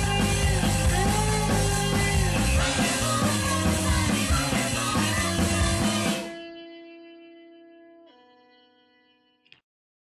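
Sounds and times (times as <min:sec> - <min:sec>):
rock band final chord: 0:00.0 - 0:07.2
electric guitar notes ringing: 0:04.7 - 0:09.6
small click: 0:09.4 - 0:09.7.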